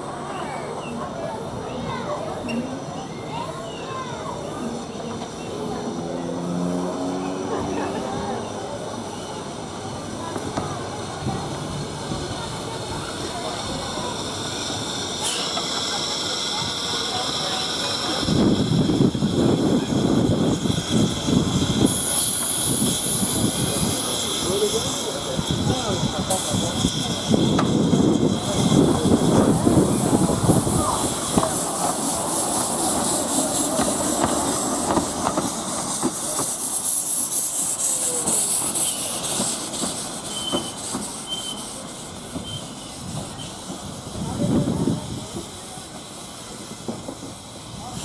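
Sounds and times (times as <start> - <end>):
steam locomotive hissing: 0.0 - 48.0
voices: 0.0 - 48.0.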